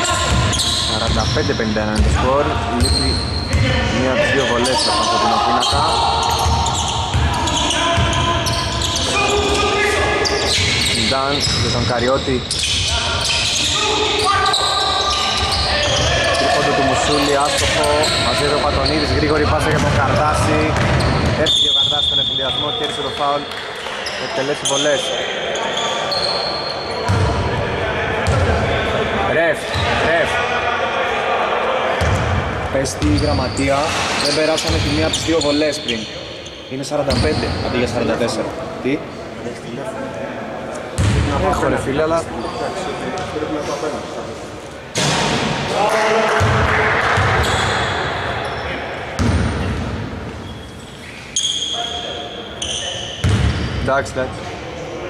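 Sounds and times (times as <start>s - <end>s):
players calling out: 0.0s - 39.4s
basketball bouncing: 19.7s - 21.4s, 27.1s - 27.3s, 53.2s - 53.7s.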